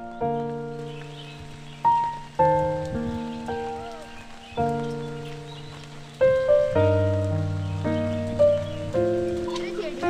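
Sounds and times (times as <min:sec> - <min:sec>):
faint rain patter: 0:00.0 - 0:10.0
gentle solo piano: 0:00.0 - 0:10.0.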